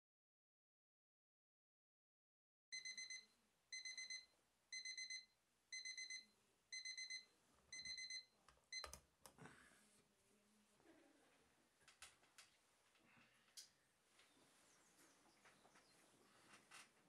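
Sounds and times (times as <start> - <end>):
alarm clock beeping: 2.7 - 8.9.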